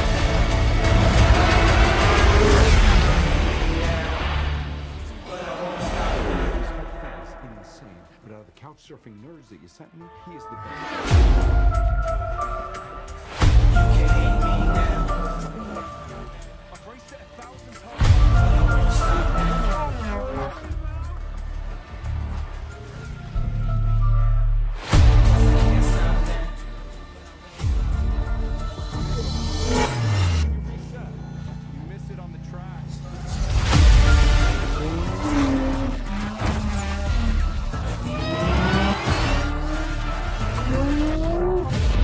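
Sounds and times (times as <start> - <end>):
music with low bass: 0.0 - 7.4, 11.1 - 42.0
race car engine revving: 0.0 - 7.6, 13.7 - 23.4, 28.2 - 42.0
race car engine passing: 34.1 - 41.8.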